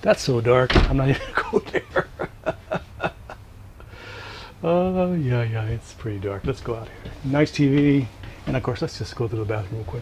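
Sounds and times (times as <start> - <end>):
man chuckling softly: 1.2 - 3.4.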